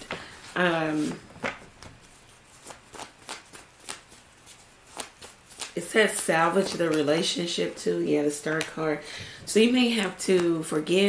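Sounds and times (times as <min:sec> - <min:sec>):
cards being shuffled: 0:00.0 - 0:07.2.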